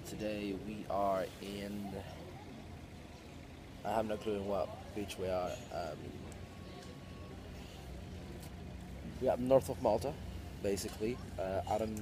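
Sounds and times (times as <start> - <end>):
man speaking: 0.0 - 2.2, 3.8 - 6.1, 9.1 - 12.0
outdoor background rumble: 0.0 - 12.0.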